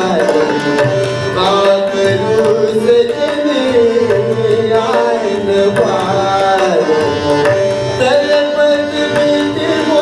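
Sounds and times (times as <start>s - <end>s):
harmonium: 0.0s - 10.0s
tabla strokes: 0.0s - 10.0s.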